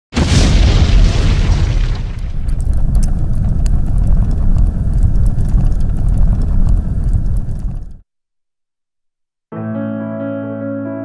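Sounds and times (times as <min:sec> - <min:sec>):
explosion boom with deep rumble: 0:00.2 - 0:08.0.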